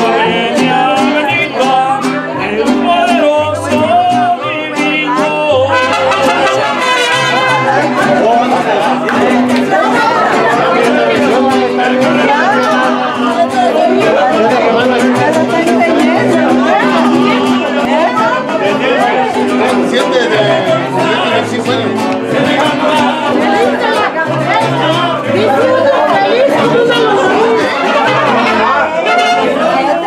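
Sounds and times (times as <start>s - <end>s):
guests chattering: 0.0s - 30.0s
guitarron bass notes: 0.0s - 30.0s
mariachi band playing: 0.0s - 30.0s.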